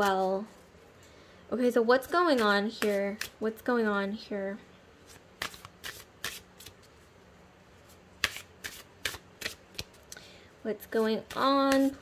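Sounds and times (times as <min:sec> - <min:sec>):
cards shuffling snaps: 0:05.1 - 0:06.9, 0:08.2 - 0:10.2.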